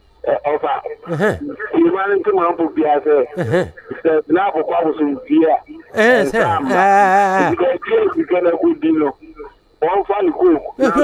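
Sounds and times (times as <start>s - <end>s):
person talking over telephone: 0.5s - 1.7s, 3.4s - 4.0s, 5.9s - 8.3s, 10.7s - 11.0s.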